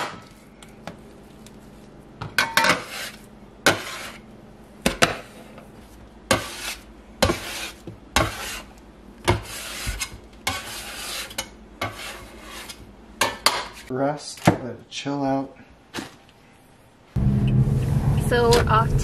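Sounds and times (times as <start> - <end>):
scraper scraping across countertop: 2.6 - 4.2, 5.1 - 8.7, 9.3 - 12.9.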